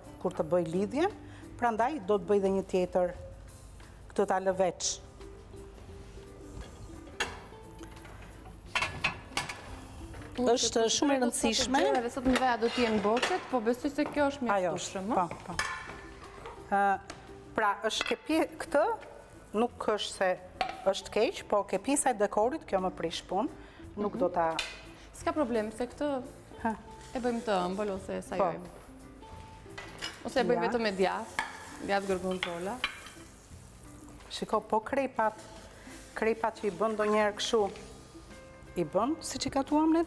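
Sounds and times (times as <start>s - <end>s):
cutlery clinking on dishes: 7.1s - 9.7s, 15.3s - 16.6s, 29.7s - 30.5s
woman speaking: 10.4s - 13.4s, 30.2s - 31.2s
woman talking: 10.4s - 15.6s, 30.2s - 32.6s
crepe pan sizzling: 30.5s - 40.0s.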